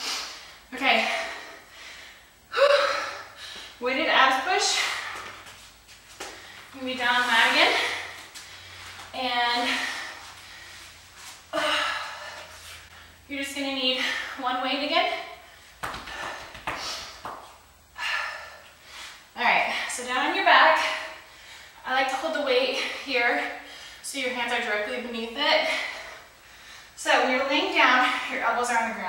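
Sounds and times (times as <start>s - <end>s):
woman speaking: 0.7s - 1.4s, 3.8s - 5.0s, 6.8s - 8.1s, 9.1s - 10.0s, 19.4s - 21.0s, 21.8s - 23.5s, 24.1s - 25.9s, 27.0s - 29.0s.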